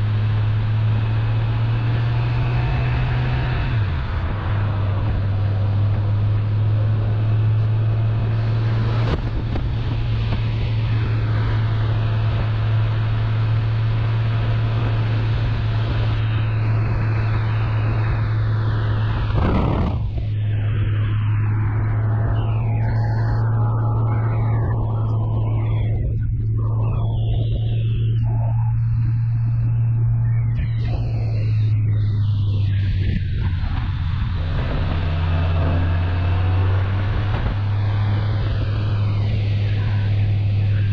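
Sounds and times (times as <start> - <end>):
motorcycle engine running: 0.0 - 20.4
motorcycle engine drone: 0.0 - 40.9
wind rushing over microphone: 0.0 - 40.9.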